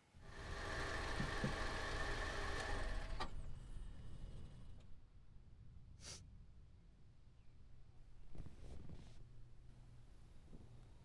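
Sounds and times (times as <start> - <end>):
car engine running: 0.2 - 4.8.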